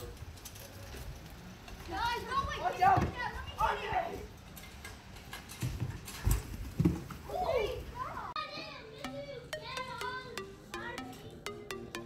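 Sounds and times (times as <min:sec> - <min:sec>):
background music: 0:08.6 - 0:12.0.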